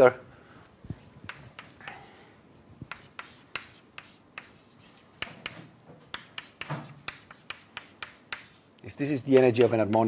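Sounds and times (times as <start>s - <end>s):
writing tool scraping on board: 1.3s - 2.0s, 2.9s - 8.7s
writing tool tapping on board: 2.9s - 4.6s, 5.2s - 8.6s, 9.2s - 10.0s
person speaking: 8.8s - 10.0s.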